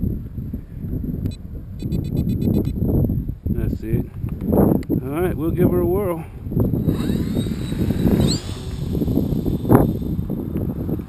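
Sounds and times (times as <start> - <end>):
wind buffeting microphone: 0.0 - 11.0
short high-pitched beeps: 1.8 - 2.8.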